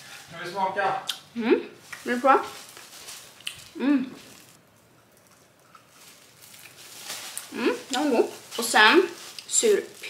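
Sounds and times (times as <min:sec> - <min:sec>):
woman humming: 0:01.4 - 0:01.7, 0:03.7 - 0:04.4, 0:07.5 - 0:07.9
woman's voice: 0:01.4 - 0:02.6, 0:07.5 - 0:10.0.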